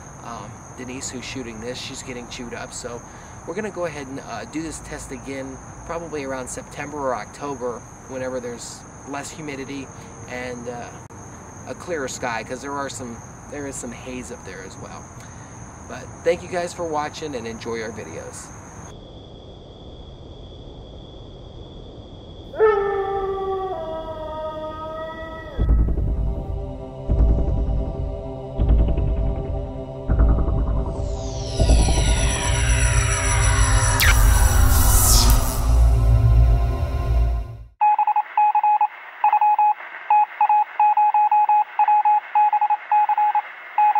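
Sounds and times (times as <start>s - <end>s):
dog howling: 22.5s - 25.9s
electronic music: 26.2s - 37.7s
high-pitched insect drone: 29.3s - 37.2s
morse code beeps: 37.8s - 43.9s
radio-like hiss: 38.8s - 43.9s.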